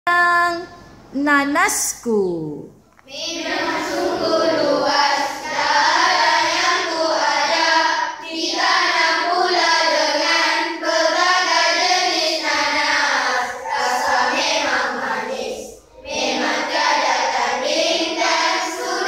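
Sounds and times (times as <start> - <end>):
children singing in chorus: 3.1 - 19.0.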